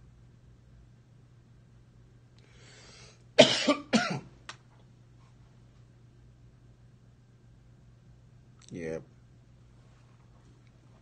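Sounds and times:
man coughing: 3.4s - 4.3s.

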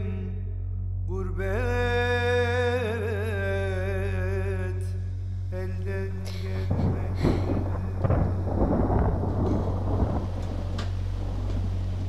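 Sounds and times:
dense rumbling noise: 0.0s - 12.0s
low drone accompaniment: 0.0s - 12.0s.

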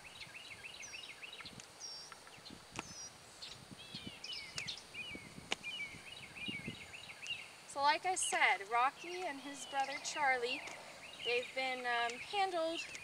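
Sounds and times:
birds chirping: 0.0s - 13.0s
sharp clicks: 10.6s - 13.0s.

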